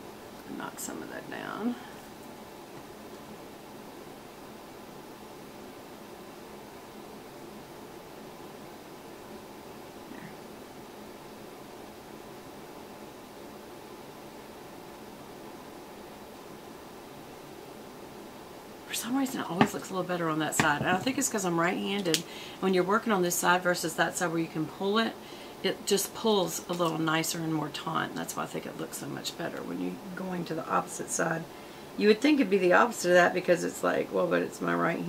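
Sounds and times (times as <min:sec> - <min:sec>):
faint low background noise: 0:00.0 - 0:35.0.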